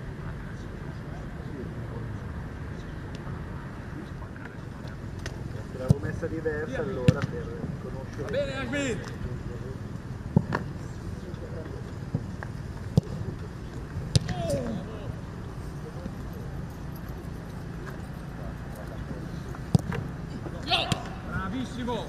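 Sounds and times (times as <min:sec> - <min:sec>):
football kicked and caught thuds: 0:12.1 - 0:13.2, 0:14.0 - 0:14.8, 0:19.7 - 0:20.1.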